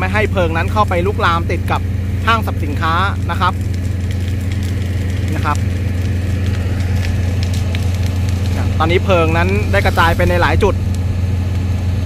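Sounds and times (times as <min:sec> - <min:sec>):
engine running steadily: 0:00.0 - 0:12.0.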